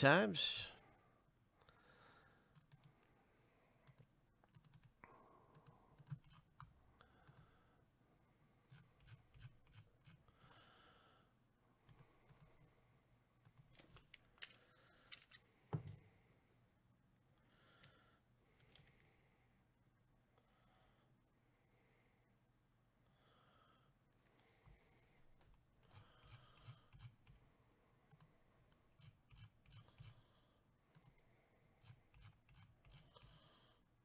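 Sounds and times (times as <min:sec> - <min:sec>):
mouse and keyboard clicks: 0:05.6 - 0:07.4.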